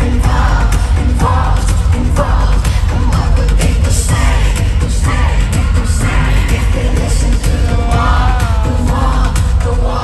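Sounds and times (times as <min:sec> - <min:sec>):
live pop music over loudspeakers: 0:00.0 - 0:10.0.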